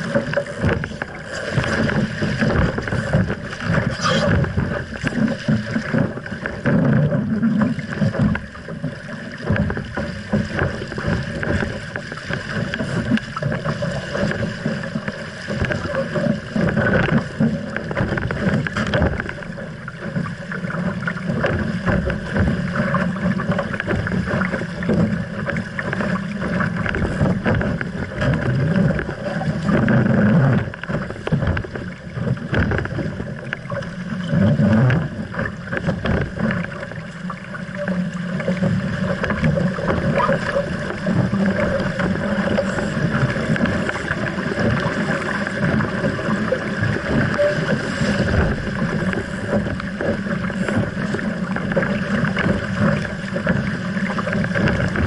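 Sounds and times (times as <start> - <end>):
water rushing along hull: 0.0 - 55.0
waves slapping hull: 0.0 - 55.0.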